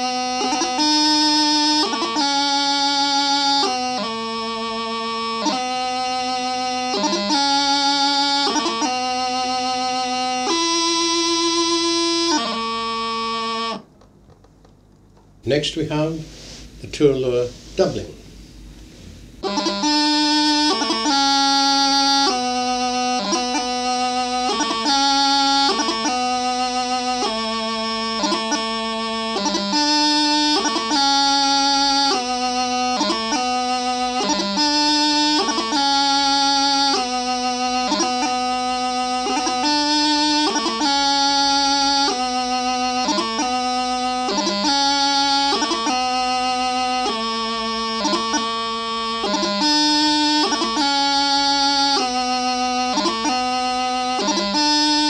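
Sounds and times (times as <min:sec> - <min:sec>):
practice chanter playing: 0:00.0 - 0:14.0, 0:19.4 - 0:55.0.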